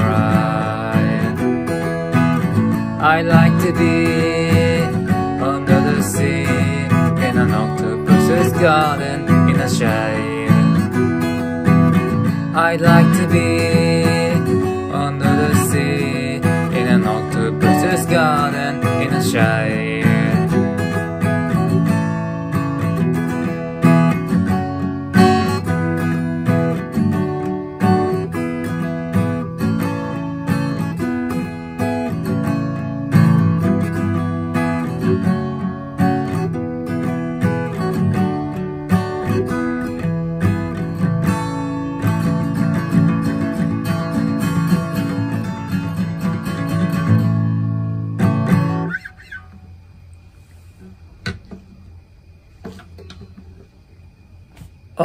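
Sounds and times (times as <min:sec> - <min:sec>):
acoustic guitar strummed chords: 0:00.0 - 0:49.8.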